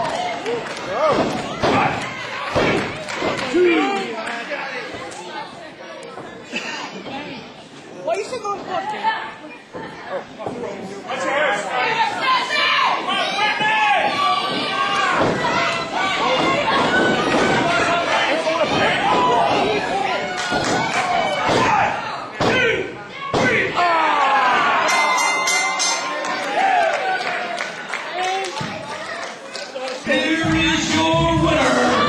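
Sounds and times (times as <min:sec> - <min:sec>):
people shouting and chattering: 0:00.0 - 0:32.0.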